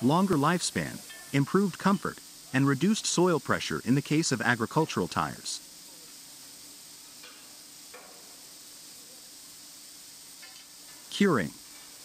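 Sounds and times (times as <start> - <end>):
factory ambience hiss: 0.0 - 12.0.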